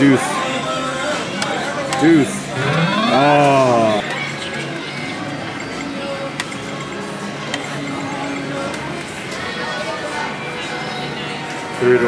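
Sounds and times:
murmur of voices: 0.0 - 12.0
background music: 2.2 - 7.4.

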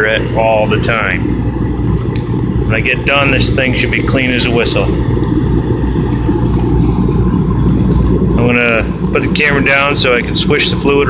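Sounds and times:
heater fan and burner rumble: 0.0 - 11.0.

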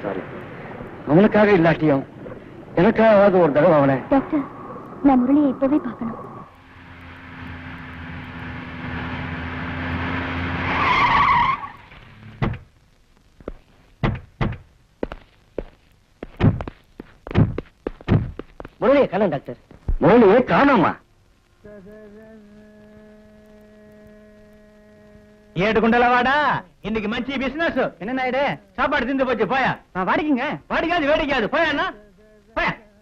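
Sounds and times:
car engine approaching: 2.2 - 12.6
tyres squealing: 10.7 - 12.4
short thump: 12.4 - 12.7, 13.5 - 15.2, 16.2 - 18.5
long humming tone: 20.8 - 26.9, 31.8 - 33.0
person speaking: 21.6 - 33.0.

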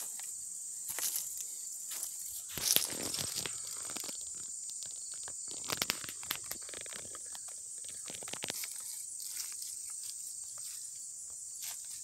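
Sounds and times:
insects droning: 0.0 - 12.0
footsteps crunching in grass: 0.9 - 12.0.

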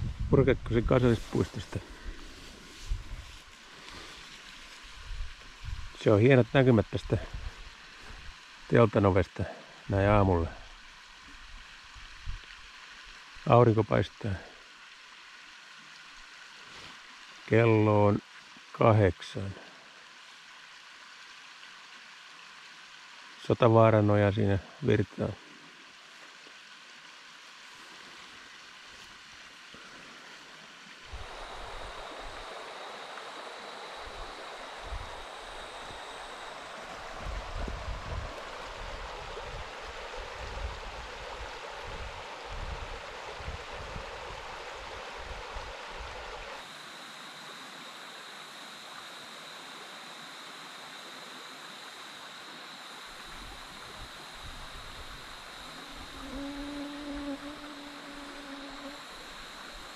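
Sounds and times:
brook flowing over stones: 7.3 - 46.7.

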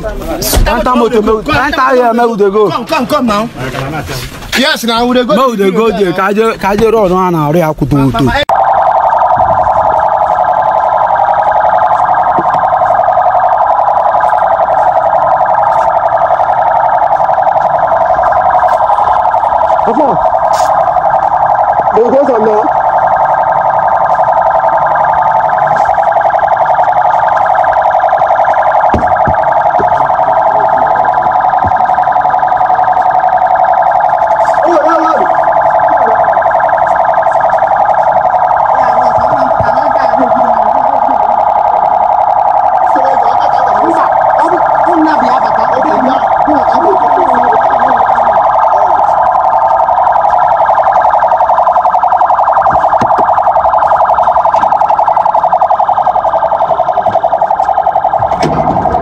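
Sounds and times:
loud alarm-like buzzing tone: 0.0 - 3.6, 4.2 - 59.0.

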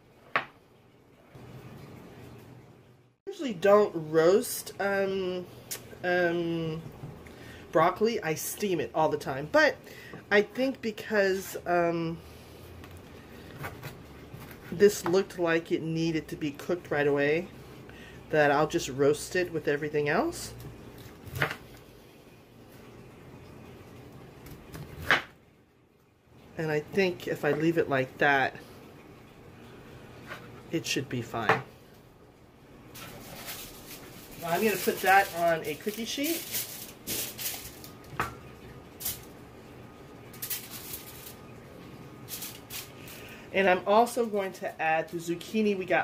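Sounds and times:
broccoli rustling: 32.8 - 39.4, 40.2 - 43.4
aluminum foil crinkling: 32.9 - 39.4, 40.1 - 43.4.

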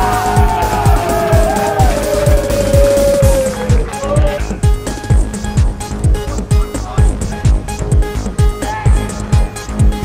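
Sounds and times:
kick-drum beat: 0.0 - 10.0.

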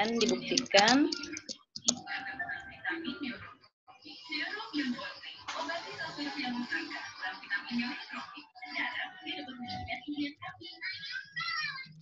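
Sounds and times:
keyboard typing clicks: 0.0 - 2.0.

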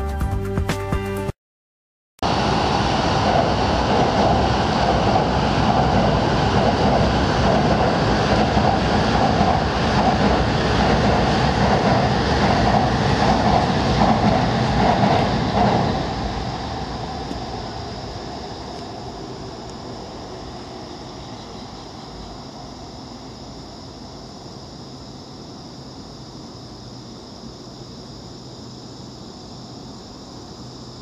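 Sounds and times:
train wheels on steel bridge: 2.3 - 25.1.

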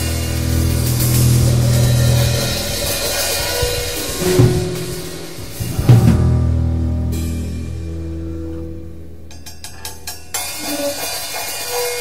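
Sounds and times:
drum kit with cymbal wash: 0.0 - 8.4, 9.2 - 12.0
upright bass: 0.0 - 9.5
loud drum hits: 0.6 - 7.6.

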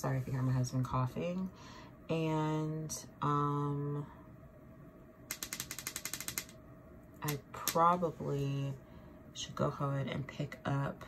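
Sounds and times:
rapid mechanical clicks: 5.3 - 6.6.

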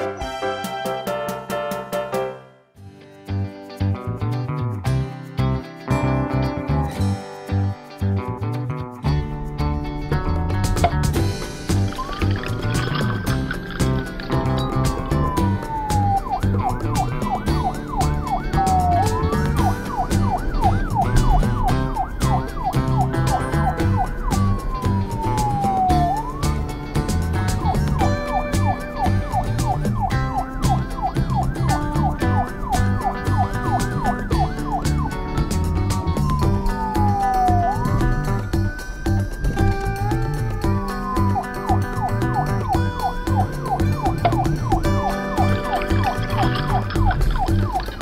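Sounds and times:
background music: 0.0 - 48.0
police siren wailing and yelping: 11.7 - 48.0.

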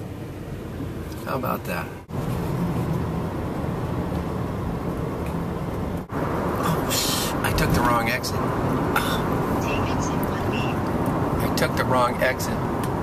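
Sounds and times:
van road and engine rumble: 0.0 - 13.0.

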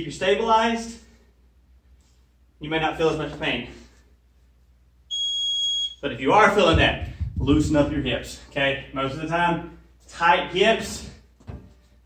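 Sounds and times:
high-pitched electronic timer beep: 5.1 - 6.0.

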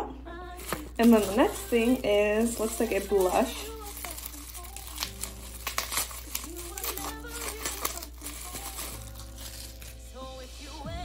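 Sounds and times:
background music: 0.0 - 11.0
bubble wrap crinkling: 0.5 - 11.0.

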